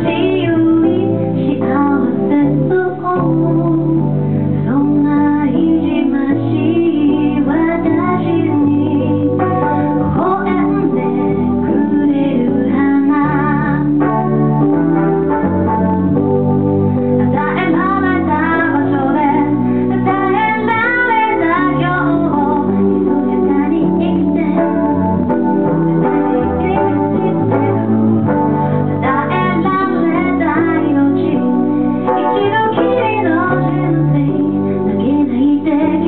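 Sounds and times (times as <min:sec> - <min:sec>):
woman singing: 0:00.0 - 0:15.6, 0:17.2 - 0:25.4, 0:26.0 - 0:36.0
piano chords: 0:00.0 - 0:36.0.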